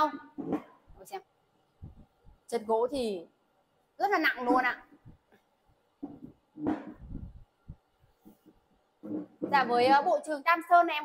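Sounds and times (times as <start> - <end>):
soft dull low thumps: 1.7 - 2.5, 5.0 - 9.8.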